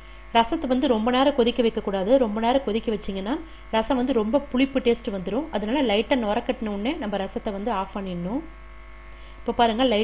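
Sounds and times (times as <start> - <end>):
faint electrical hum: 0.0 - 10.0
woman speaking: 0.4 - 8.6, 9.4 - 10.0.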